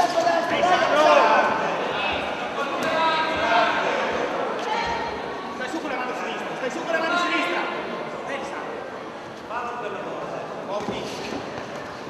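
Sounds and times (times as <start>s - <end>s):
crowd background: 0.0s - 12.0s.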